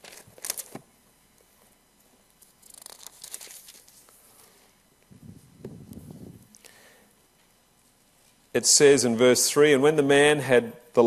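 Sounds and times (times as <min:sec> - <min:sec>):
thin pages rustling: 0:00.0 - 0:00.8, 0:02.4 - 0:04.2.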